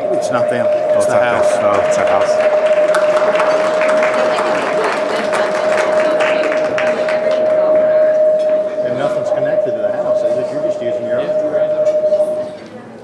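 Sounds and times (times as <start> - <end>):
audience murmur: 0.0 - 13.0
loud steady pa whine: 0.0 - 13.0
scattered clapping: 0.4 - 8.8.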